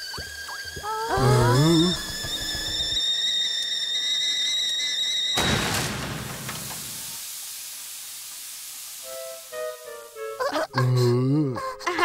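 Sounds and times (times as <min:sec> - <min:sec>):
high-pitched steam whistle: 0:00.3 - 0:07.2, 0:09.0 - 0:10.0.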